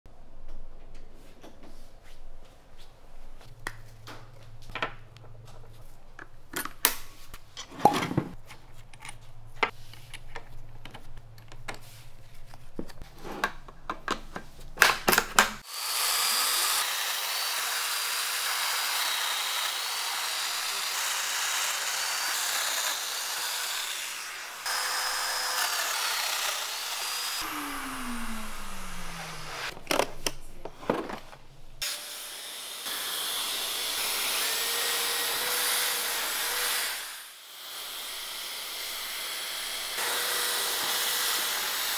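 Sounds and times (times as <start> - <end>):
power joiner whining: 15.6 - 29.8, 31.8 - 41.9.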